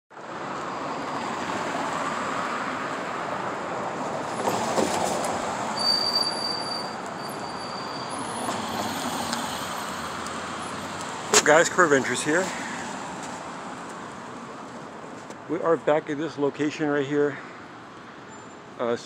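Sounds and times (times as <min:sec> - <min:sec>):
street traffic noise: 0:00.1 - 0:19.0
high squeal: 0:05.7 - 0:10.2.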